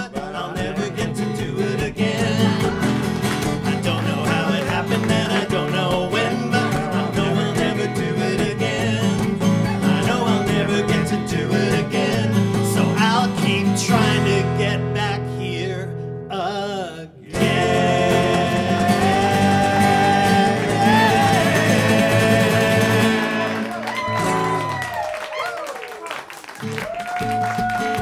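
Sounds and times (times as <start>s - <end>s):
men singing together: 0.0s - 14.9s, 16.3s - 23.9s
acoustic guitars strumming: 0.0s - 24.8s.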